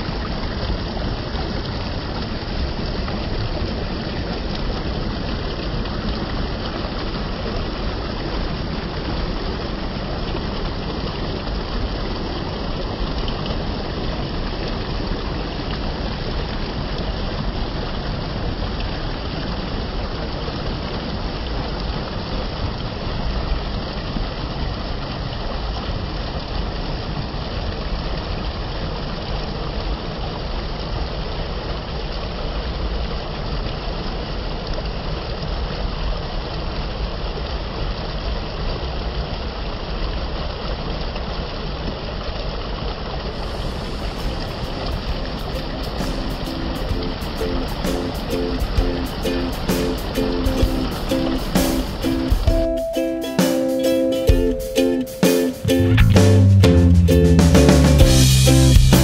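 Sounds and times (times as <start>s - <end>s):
stream rushing over rocks: 0.0s - 52.6s.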